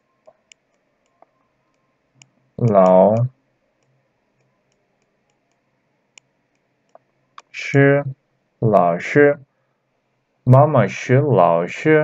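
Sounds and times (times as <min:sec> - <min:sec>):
computer mouse clicks: 0:00.2 - 0:07.5.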